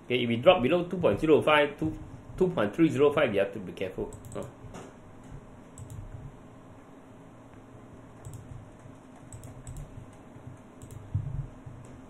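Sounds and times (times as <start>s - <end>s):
keyboard and mouse clicks: 4.1s - 4.9s, 5.6s - 6.2s, 8.2s - 11.2s.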